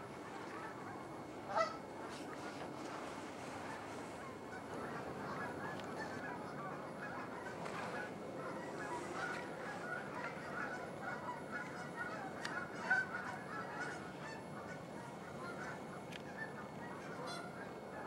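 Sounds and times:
geese honking: 0:00.0 - 0:18.0.

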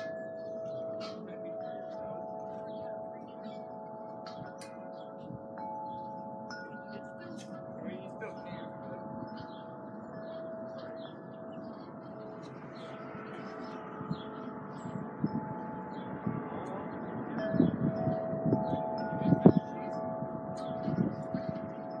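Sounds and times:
wind chimes ringing: 0:00.0 - 0:22.0.

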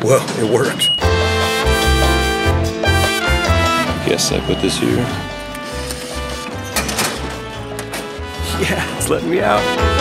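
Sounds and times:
background music with low beat: 0:01.0 - 0:10.0.

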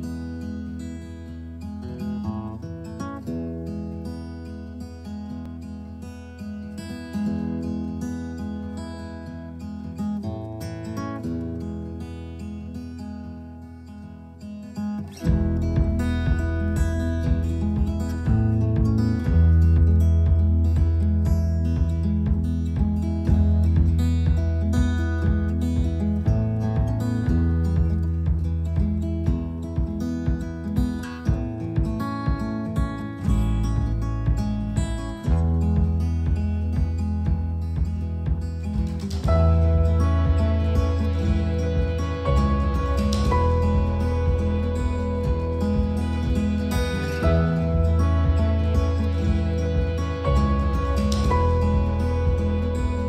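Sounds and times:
acoustic guitar background music: 0:00.0 - 0:53.0.

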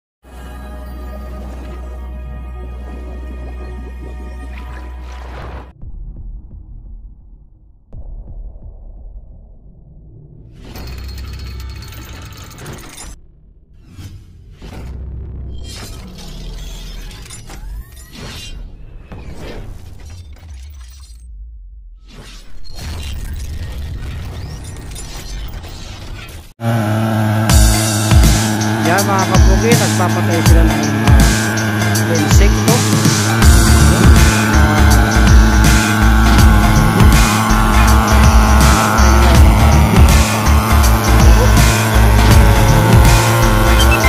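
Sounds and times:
deep low rumble: 0:05.6 - 0:11.0, 0:32.9 - 0:44.0
music with heavy bass beat: 0:27.4 - 0:44.0.

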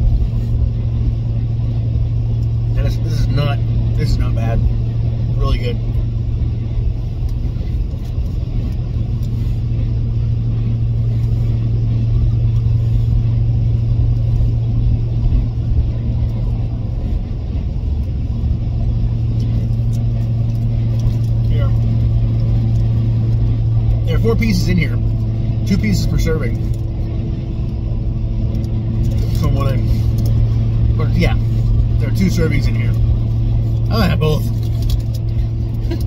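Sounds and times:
vehicle engine and road noise: 0:00.0 - 0:36.0.

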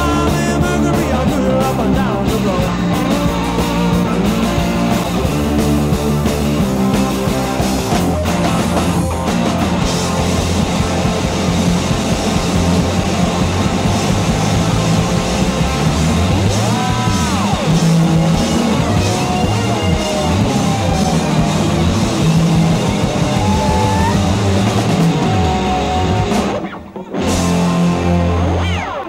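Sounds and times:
blues-rock band playing: 0:00.0 - 0:29.0.

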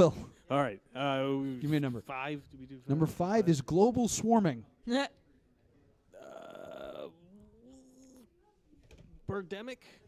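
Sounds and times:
person's wavering hum: 0:06.2 - 0:08.3.

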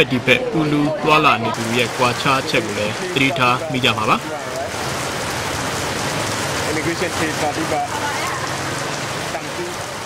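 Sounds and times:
faint voices: 0:00.0 - 0:05.3
steady rain falling: 0:00.0 - 0:10.0.

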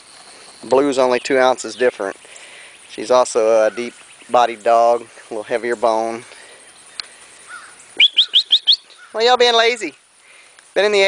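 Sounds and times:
small bird chirping: 0:00.0 - 0:11.0.

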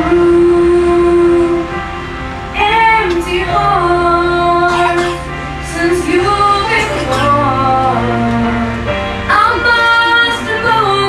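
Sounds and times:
girl singing a pop ballad: 0:00.0 - 0:01.8, 0:02.6 - 0:11.0
musical accompaniment: 0:00.0 - 0:11.0.

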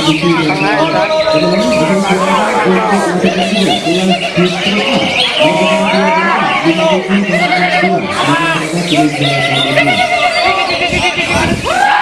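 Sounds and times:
birds singing whistled phrases: 0:00.0 - 0:11.7
crowd voices: 0:00.0 - 0:12.0.

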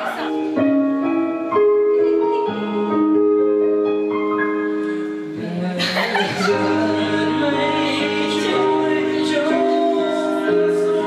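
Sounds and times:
backing track over speakers: 0:00.0 - 0:11.0
man singing into microphone: 0:05.2 - 0:11.0.

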